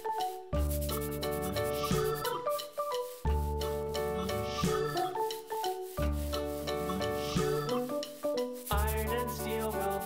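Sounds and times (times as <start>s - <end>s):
keyboard and bass music: 0.0s - 10.0s
marker rubbing back and forth: 0.6s - 5.1s, 5.7s - 10.0s.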